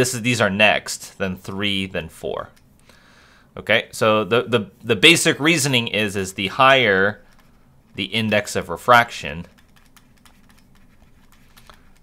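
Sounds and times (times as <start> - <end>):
low steady hum: 0.0 - 12.0
stylus tapping and scratching tablet: 7.2 - 8.6, 9.3 - 12.0.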